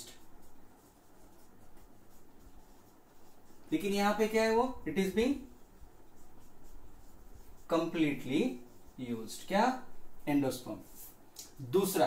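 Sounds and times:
faint writing sounds: 0:00.0 - 0:11.3
person speaking: 0:02.6 - 0:12.0.

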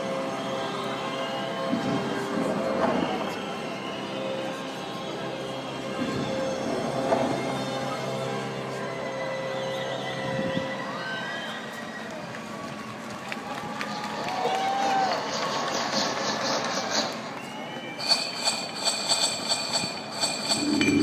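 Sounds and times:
pulsing rhythmic passage: 0:18.1 - 0:21.0
noise and shifting tones: 0:20.4 - 0:21.0.

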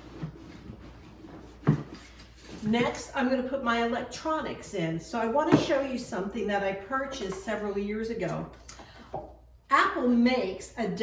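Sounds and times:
fabric rustling and shuffling: 0:00.0 - 0:02.8.

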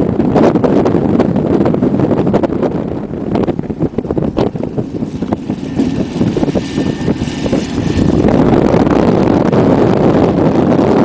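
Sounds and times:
diesel locomotive engine drone: 0:03.0 - 0:10.5.

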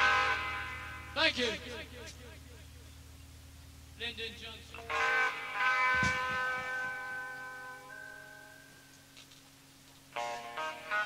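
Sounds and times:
sustained electric tone: 0:00.0 - 0:11.0.

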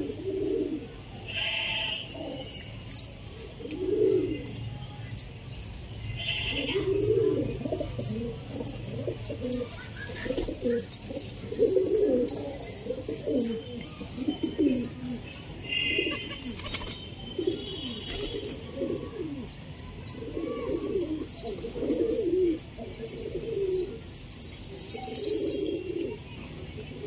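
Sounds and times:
pigeons cooing: 0:00.0 - 0:27.0.

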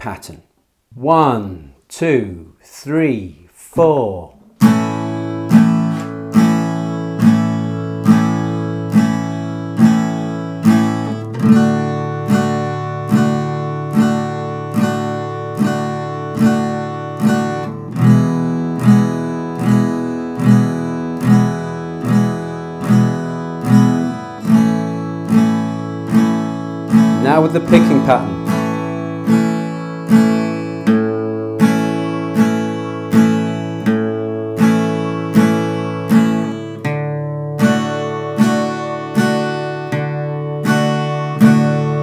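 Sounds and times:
acoustic guitar strumming: 0:04.4 - 0:42.0.

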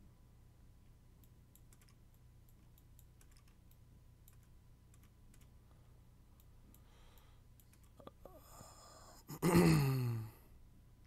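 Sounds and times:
faint mouse clicks: 0:00.8 - 0:05.6, 0:06.4 - 0:08.3
man sighing: 0:08.0 - 0:10.5.

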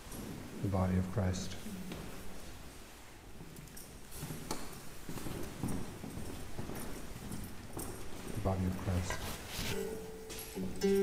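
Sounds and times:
footsteps on hard floor: 0:03.4 - 0:11.0.

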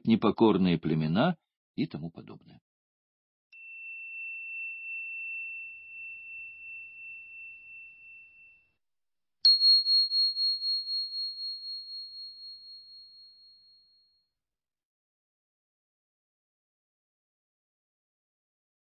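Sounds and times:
high bell tone struck sharply: 0:03.6 - 0:08.8, 0:09.5 - 0:13.2
soft low bell tone: 0:03.6 - 0:08.8, 0:09.5 - 0:14.3.

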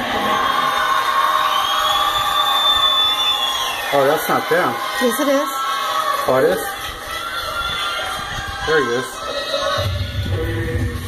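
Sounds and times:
crowd cheering through speakers: 0:00.0 - 0:11.0.

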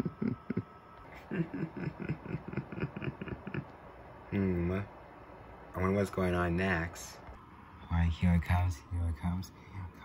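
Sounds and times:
person murmuring rapid syllables: 0:00.0 - 0:03.7.

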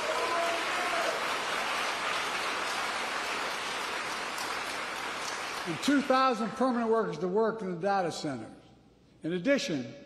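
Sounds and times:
audience cheering: 0:00.0 - 0:03.8
audience applauding: 0:00.0 - 0:06.4.

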